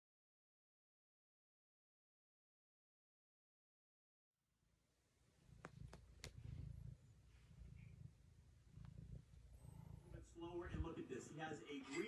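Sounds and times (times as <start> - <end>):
cat purring: 5.1 - 12.0.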